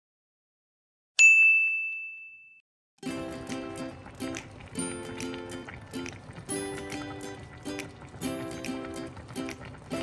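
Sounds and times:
bell-like ding: 1.2s - 2.6s.

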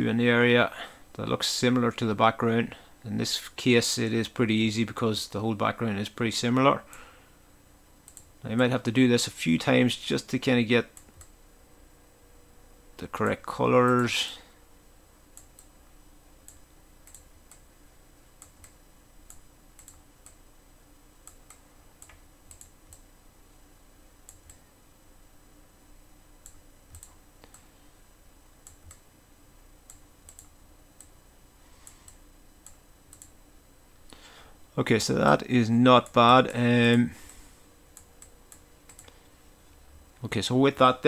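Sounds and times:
faint steady hum: 0.0s - 41.0s
computer mouse clicking: 8.1s - 8.3s, 16.4s - 17.6s, 18.4s - 20.4s, 21.2s - 23.1s, 26.4s - 27.6s, 29.9s - 31.1s, 31.8s - 33.3s, 38.0s - 39.2s.

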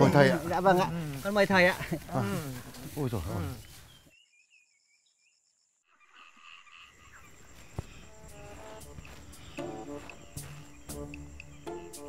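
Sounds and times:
crickets chirping: 0.0s - 12.0s
soft background music: 8.1s - 12.0s.

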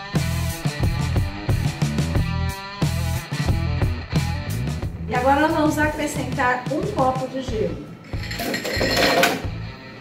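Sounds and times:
ice cubes clattering into blender: 8.2s - 9.4s.

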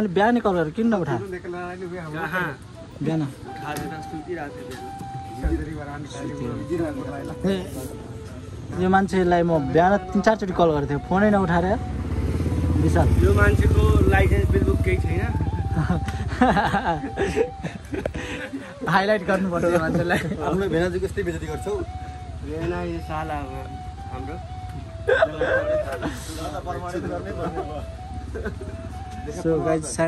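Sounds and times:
people's voices: 2.2s - 30.0s
motorcycle engine rumble: 2.6s - 30.0s.

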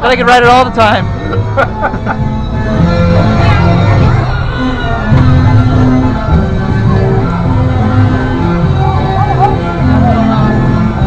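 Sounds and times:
loud merry-go-round music: 0.0s - 11.0s.

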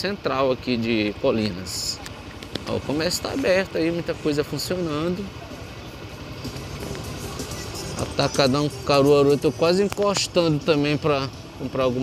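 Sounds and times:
motorcycle engine running: 0.5s - 12.0s.

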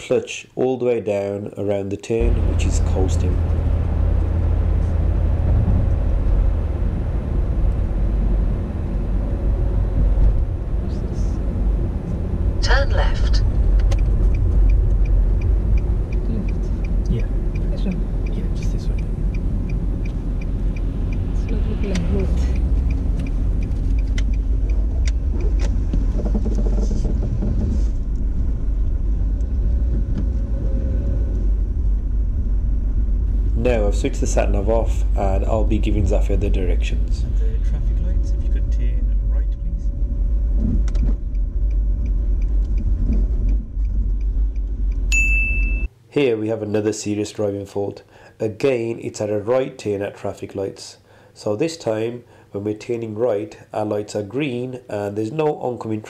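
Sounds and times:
engine and tyre rumble: 2.2s - 45.9s
turn signal ticking: 12.6s - 27.3s, 40.4s - 45.9s.

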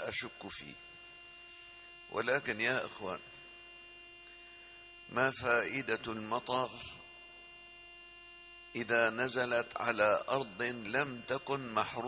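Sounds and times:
man speaking: 0.0s - 0.8s, 2.1s - 3.2s, 5.1s - 7.0s, 8.8s - 12.0s
electrical mains hum: 0.0s - 12.0s
faint whining tones: 0.0s - 12.0s.

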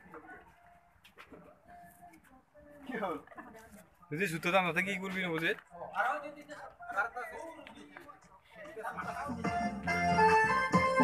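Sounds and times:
faint voices talking: 0.0s - 10.4s.

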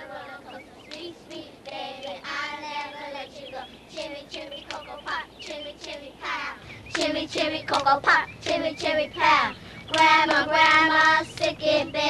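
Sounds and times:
girls singing handclapping chant: 0.0s - 12.0s.

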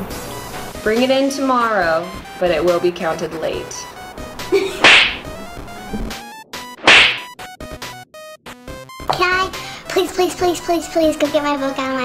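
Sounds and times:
whip-crack sound effect: 4.8s - 5.3s, 6.8s - 7.3s.

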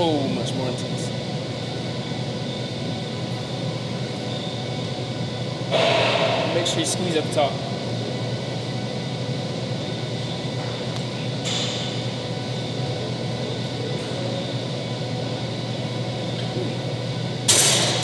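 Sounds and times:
gym room noise hiss: 0.0s - 18.0s.

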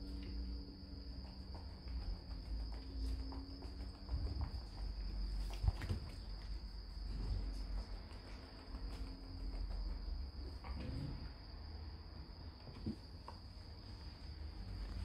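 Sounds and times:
puppies shuffling: 1.1s - 10.8s.

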